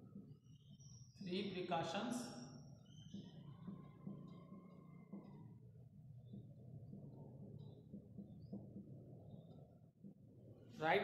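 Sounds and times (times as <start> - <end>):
marker squeaking on whiteboard: 2.8 - 5.3.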